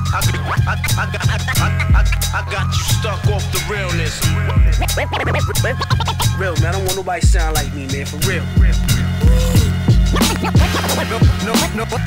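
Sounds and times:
bass-heavy drum loop: 0:00.0 - 0:12.0
turntable scratching: 0:00.0 - 0:12.0.

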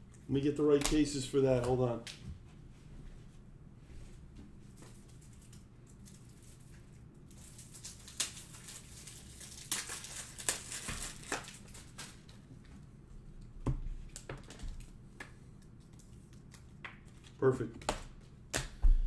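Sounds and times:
plastic crinkling and clicking: 0:07.3 - 0:12.4.

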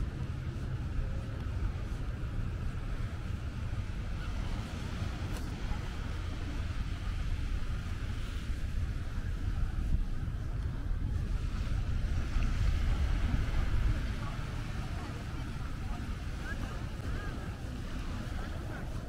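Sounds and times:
small waves washing on sand: 0:00.0 - 0:19.0
wind buffeting microphone: 0:00.0 - 0:19.0.

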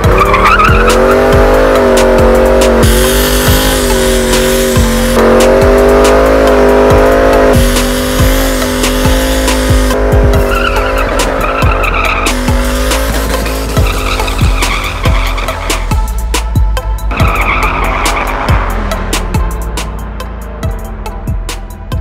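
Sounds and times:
tyres spinning and squealing: 0:00.0 - 0:02.7, 0:10.2 - 0:16.2, 0:17.1 - 0:18.8
car engine revving high: 0:00.0 - 0:16.5, 0:17.1 - 0:21.4
music with a heavy beat: 0:00.0 - 0:22.0.

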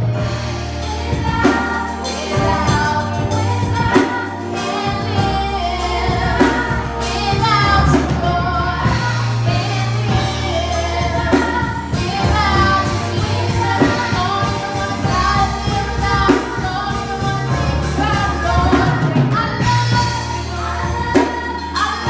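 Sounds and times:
deep held bass line: 0:00.0 - 0:22.0
drum kit hits: 0:00.0 - 0:22.0
gospel choir singing: 0:00.0 - 0:22.0
keyboard accompaniment: 0:00.0 - 0:22.0
young female voices singing: 0:00.0 - 0:22.0.

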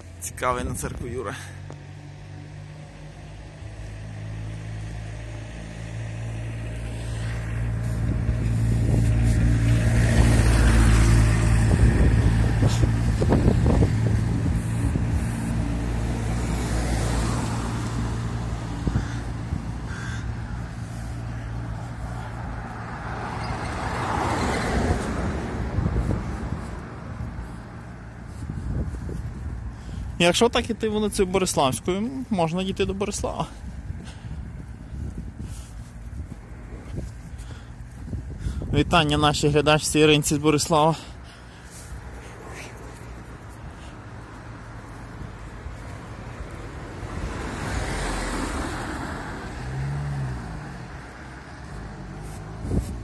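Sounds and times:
vehicle passing by: 0:00.0 - 0:53.0.

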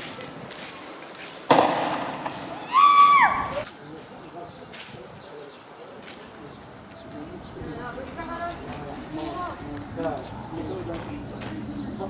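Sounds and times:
faint street noise: 0:00.0 - 0:12.0
loud sharp bang: 0:01.5 - 0:03.6.

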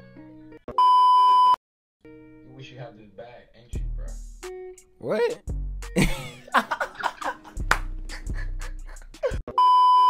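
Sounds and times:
high electronic censor bleep: 0:00.8 - 0:01.6, 0:09.6 - 0:10.0
faint background music: 0:02.1 - 0:09.8.

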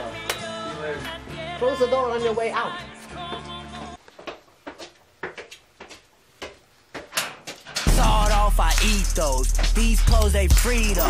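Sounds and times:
footsteps on stairs: 0:03.3 - 0:10.8.

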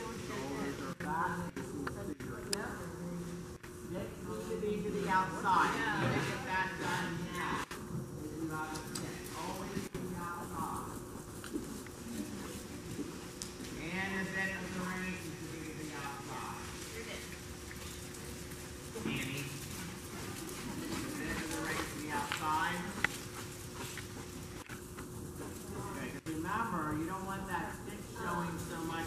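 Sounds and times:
horse hooves thudding on dirt: 0:03.6 - 0:27.4.

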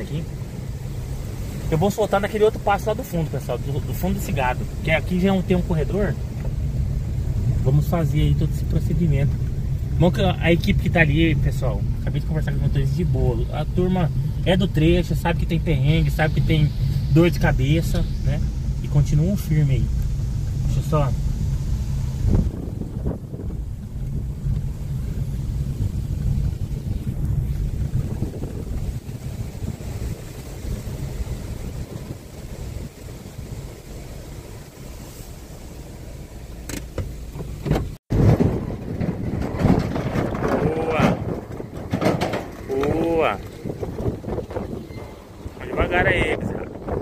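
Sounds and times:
wind noise: 0:00.0 - 0:36.0, 0:36.9 - 0:47.0
vehicle rumble inside cab: 0:00.0 - 0:47.0.

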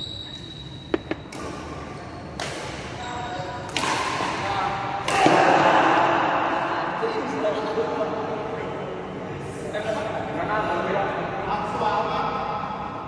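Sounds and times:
players' voices echoing: 0:01.5 - 0:13.0
racket striking shuttlecock: 0:03.7 - 0:04.4.

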